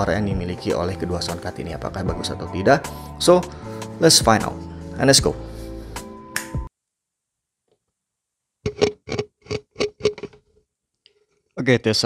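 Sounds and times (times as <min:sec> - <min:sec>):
guitar background music: 0:00.0 - 0:06.7
microphone tapping: 0:08.6 - 0:10.4.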